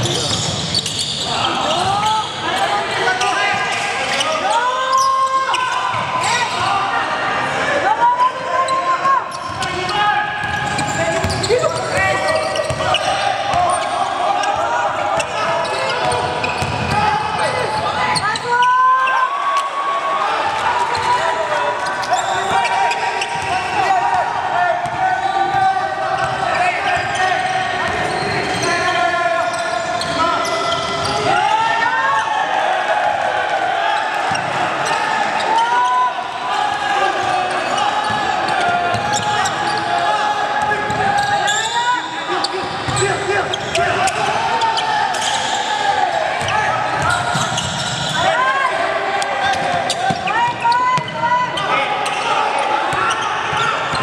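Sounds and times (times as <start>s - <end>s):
people calling out: 0.0s - 54.0s.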